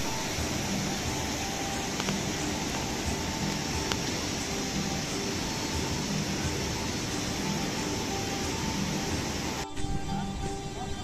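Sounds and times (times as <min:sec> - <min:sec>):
river rushing over rocks: 0:00.0 - 0:11.0.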